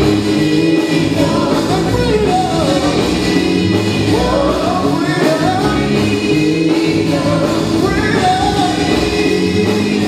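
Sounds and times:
instrumental music: 0.0s - 10.0s
voices singing gospel: 0.0s - 10.0s.

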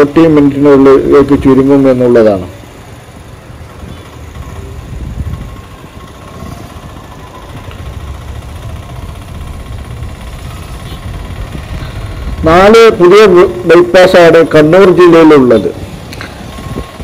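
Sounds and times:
traffic: 0.0s - 17.0s
vehicle engine and road noise: 0.0s - 17.0s.

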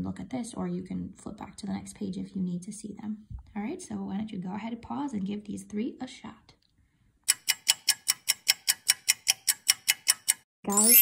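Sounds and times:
clock ticking: 7.3s - 10.5s.

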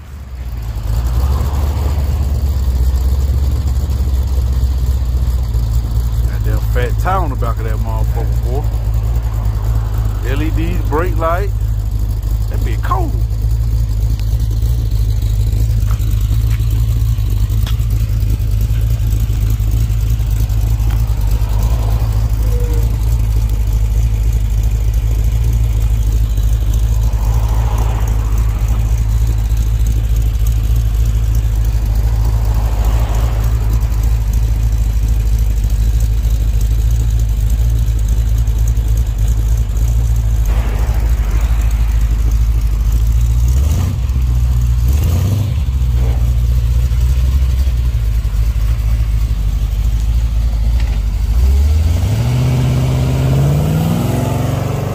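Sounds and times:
car engine idling and revving: 0.0s - 54.9s.

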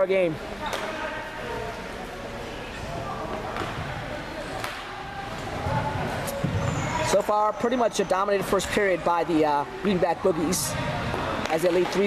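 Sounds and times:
players' voices in a gym: 0.0s - 12.0s.

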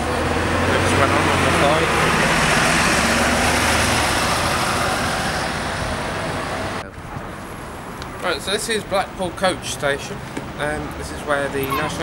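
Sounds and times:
bus driving past: 0.0s - 8.0s.

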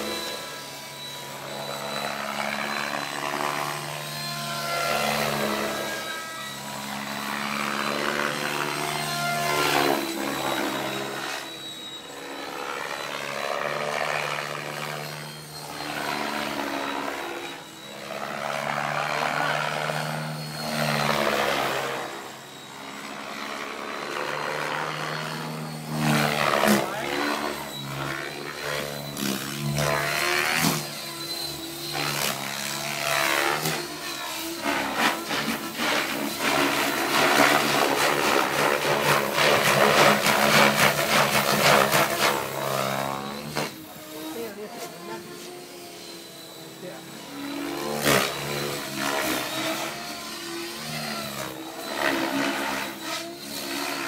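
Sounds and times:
model helicopter rotor humming: 0.0s - 54.0s.

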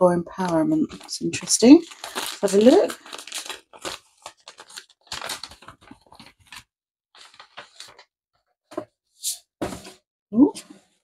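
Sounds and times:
paper envelopes rustling: 0.8s - 8.1s
paper packet tearing: 0.9s - 8.0s.

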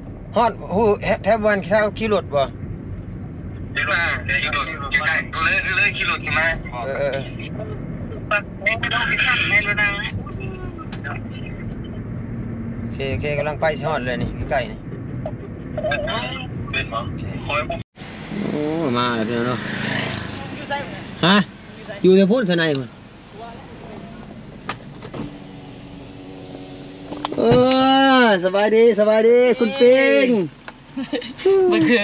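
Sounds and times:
road and engine rumble in car: 0.0s - 32.0s.

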